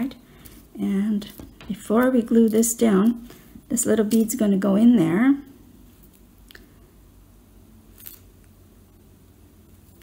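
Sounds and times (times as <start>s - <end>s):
fingers handling bead and wire: 4.0s - 4.4s.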